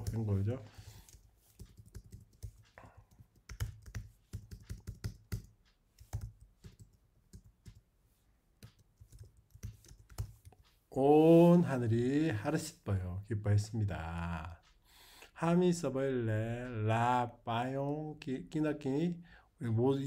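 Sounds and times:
computer keyboard typing: 0.0 - 7.8, 8.6 - 10.8.

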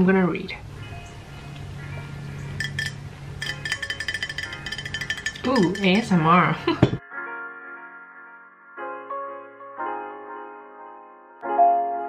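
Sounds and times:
soft background music: 0.0 - 12.0
glass bottle clinking: 2.6 - 6.3.

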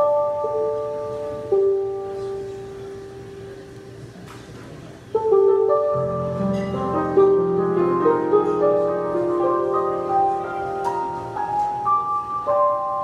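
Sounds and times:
electric piano chords: 0.0 - 4.3, 4.9 - 13.0.

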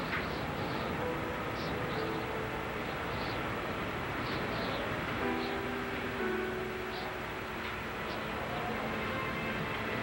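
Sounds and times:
soft music of held notes: 0.0 - 10.0.

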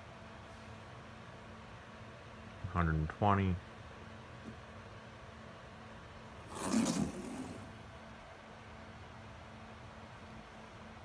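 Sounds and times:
cable dragged across cardboard: 6.4 - 7.7.

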